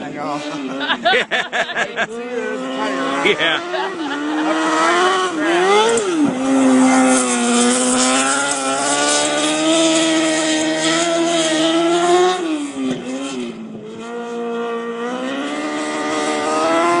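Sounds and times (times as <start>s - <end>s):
race car engine: 0.0s - 17.0s.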